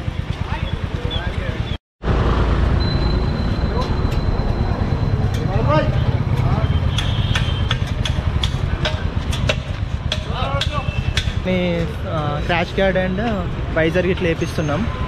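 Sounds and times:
low traffic rumble: 0.0s - 15.0s.

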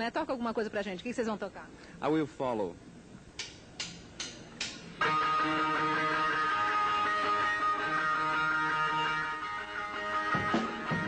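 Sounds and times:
electric guitar playing: 5.0s - 11.0s.

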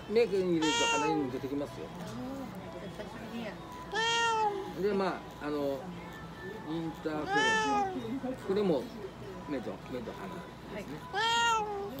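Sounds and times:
cat meowing: 0.6s - 1.2s, 3.9s - 4.6s, 7.2s - 8.0s, 11.1s - 12.0s.

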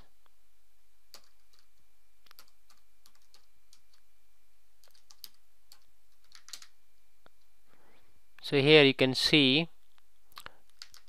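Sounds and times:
typing on computer keyboard: 1.1s - 4.0s, 4.8s - 6.8s, 10.7s - 11.0s.

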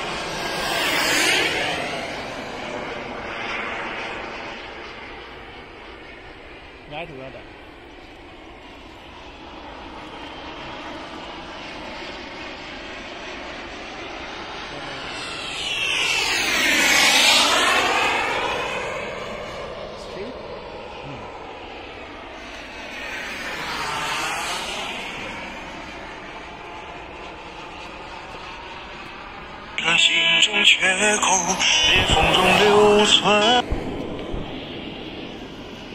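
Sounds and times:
model jet turbine fly-by: 0.0s - 35.9s.

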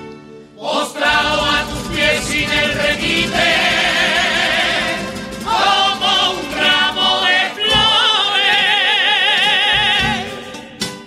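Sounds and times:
group singing in chorus: 0.6s - 10.9s
steady drum beat: 1.0s - 8.3s, 9.7s - 10.7s.

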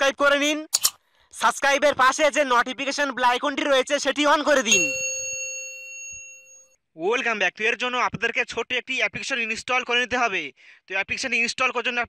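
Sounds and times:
notification bell ding: 4.6s - 6.6s.

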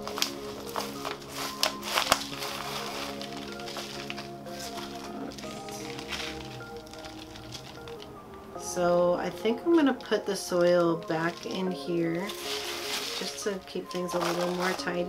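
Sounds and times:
potting soil crackling: 0.0s - 15.0s
soft background music: 0.0s - 15.0s.

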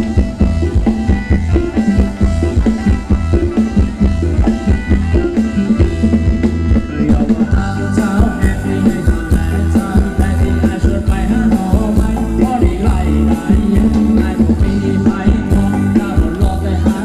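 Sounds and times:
drum and bass beat: 0.0s - 17.0s
live band dance music: 0.0s - 17.0s.

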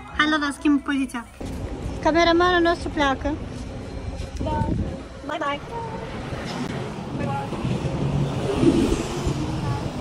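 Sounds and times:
bus engine rumble: 0.0s - 10.0s
street traffic: 0.0s - 10.0s.

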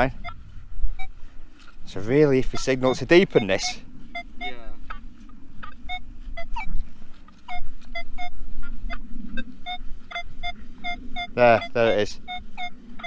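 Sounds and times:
metal detector beeps: 0.0s - 1.2s, 2.0s - 5.0s, 5.6s - 13.0s
metal detector chirps: 0.0s - 1.2s, 2.0s - 5.0s, 5.6s - 13.0s.

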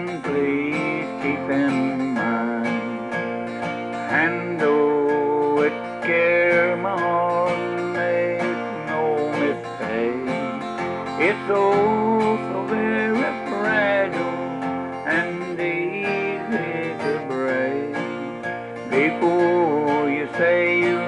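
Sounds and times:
man singing country song: 0.0s - 21.0s
strummed acoustic guitar: 0.0s - 21.0s.

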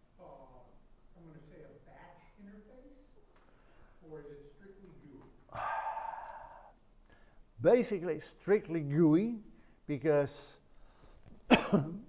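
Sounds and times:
man sighing: 5.5s - 7.3s.

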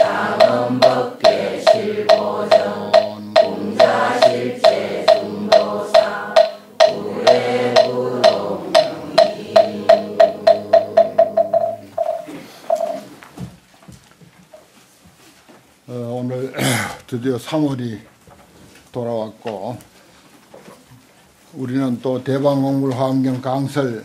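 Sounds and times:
congregation chanting in unison: 0.0s - 13.1s
wooden fish drum strikes: 0.0s - 13.1s.

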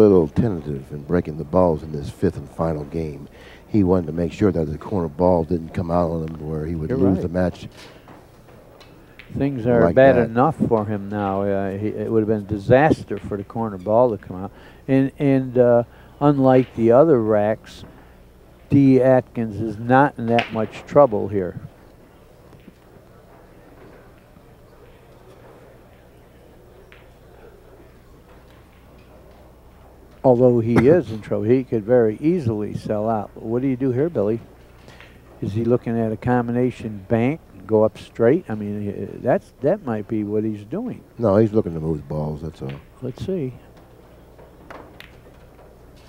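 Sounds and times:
pool balls clicking: 0.0s - 24.4s, 26.8s - 46.0s
low steady hum: 0.0s - 46.0s
faint background voices: 21.4s - 31.4s.

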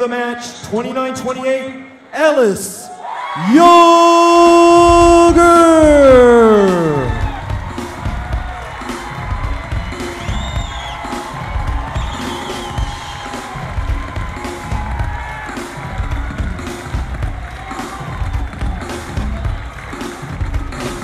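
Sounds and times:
music with heavy steady beat: 4.5s - 21.0s.

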